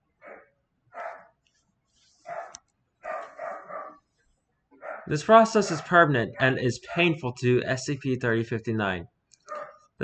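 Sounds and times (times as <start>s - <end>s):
faint dog barking: 0.2s - 1.4s, 2.2s - 4.1s, 4.8s - 6.6s, 9.5s - 9.9s.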